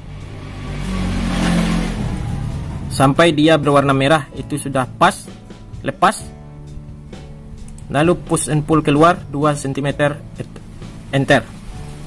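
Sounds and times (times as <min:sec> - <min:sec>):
motor vehicle passing: 0:00.0 - 0:04.2
background music: 0:00.0 - 0:12.0.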